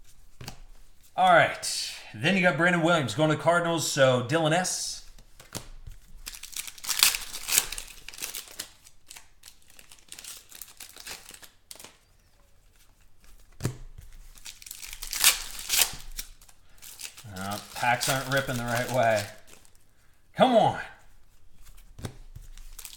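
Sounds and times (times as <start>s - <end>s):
foil packs ripping and crinkling: 6.0s - 12.0s, 14.1s - 19.9s, 22.4s - 22.9s.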